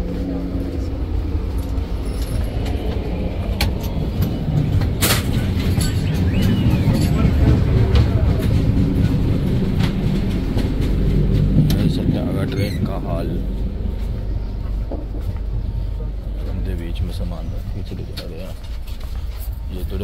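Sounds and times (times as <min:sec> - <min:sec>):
train coach rumble: 0:00.0 - 0:20.0.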